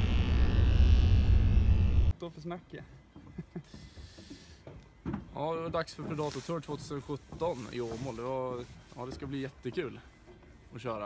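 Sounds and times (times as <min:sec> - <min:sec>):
deep rumbling drone: 0:00.0 - 0:02.1.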